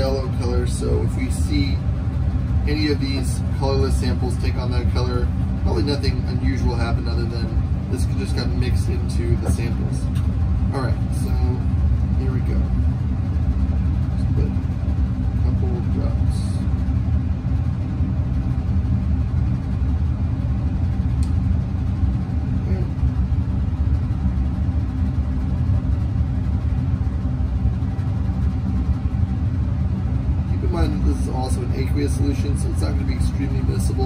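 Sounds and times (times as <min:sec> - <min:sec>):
low machinery drone with hum: 0:00.0 - 0:34.0.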